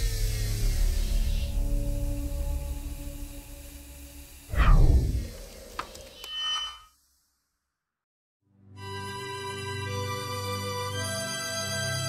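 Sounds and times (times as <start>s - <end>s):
deep boom: 4.5s - 5.4s
falling swoosh: 4.5s - 5.6s.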